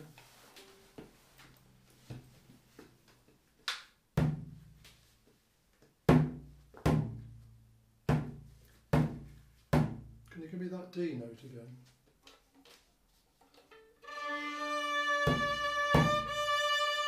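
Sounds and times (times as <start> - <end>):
frame drum beats: 6.1 - 10.2, 15.0 - 16.6.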